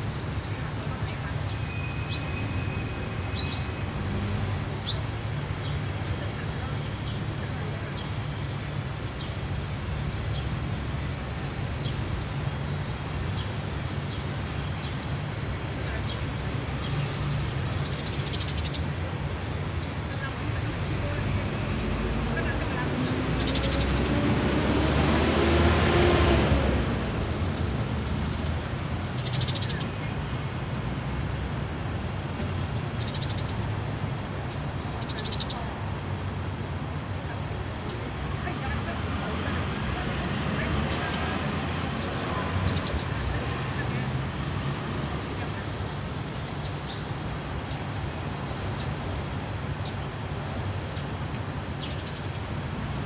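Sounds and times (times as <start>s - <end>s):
low traffic rumble: 0.0s - 53.0s
vehicle driving past: 24.0s - 27.5s.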